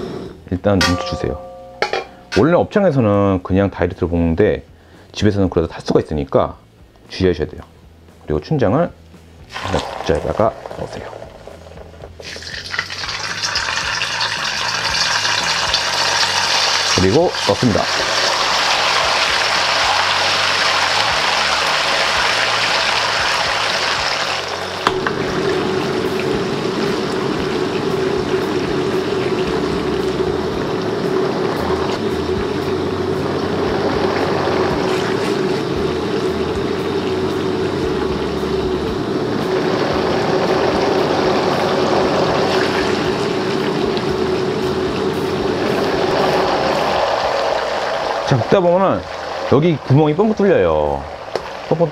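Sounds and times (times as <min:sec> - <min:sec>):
steady hum: 0:00.0 - 0:03.6, 0:08.9 - 0:51.9
paste sizzling in oil: 0:09.5 - 0:51.9.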